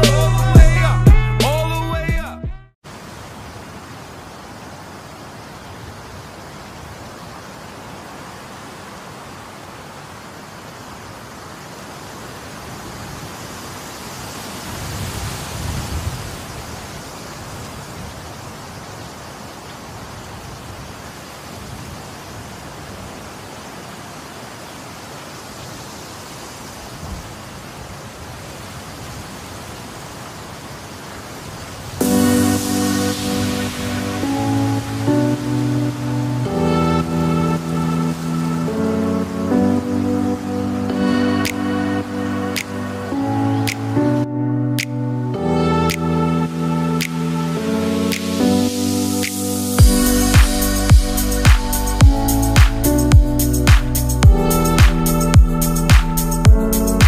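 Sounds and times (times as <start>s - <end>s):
steady rushing noise: 31.8s - 38.7s, 45.9s - 57.0s.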